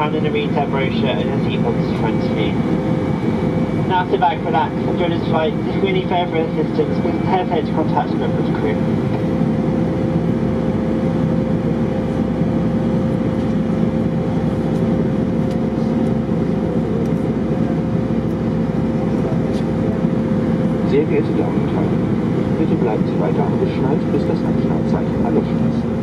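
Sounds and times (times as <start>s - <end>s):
airplane cabin engine rush: 0.0s - 26.0s
constant hum: 0.0s - 26.0s.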